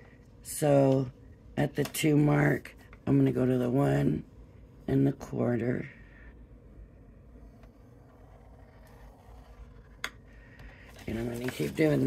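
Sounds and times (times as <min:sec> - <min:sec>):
low hum: 0:02.7 - 0:12.0.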